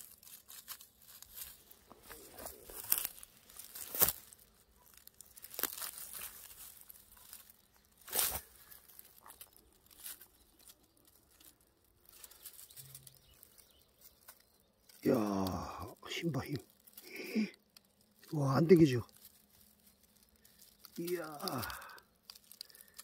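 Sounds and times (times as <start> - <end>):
dry grass rustling and crackling: 0.0 - 23.0
twigs snapping: 0.0 - 23.0.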